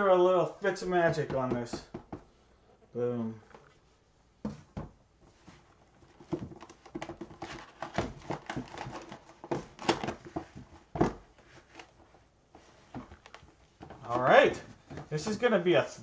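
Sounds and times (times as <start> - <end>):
knock: 1.2 - 2.3.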